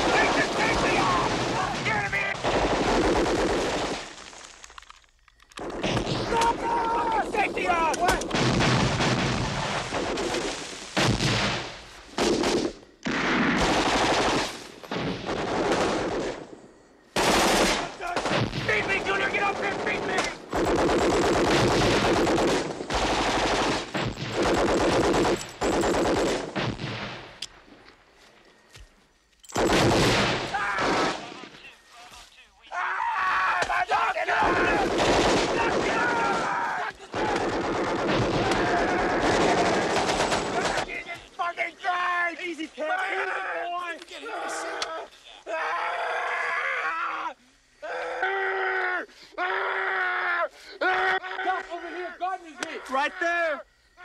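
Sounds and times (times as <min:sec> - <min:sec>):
heavy automatic gunfire: 0:00.0 - 0:04.0, 0:13.2 - 0:14.6, 0:17.2 - 0:27.2, 0:29.6 - 0:31.2, 0:34.7 - 0:36.4, 0:37.2 - 0:40.9.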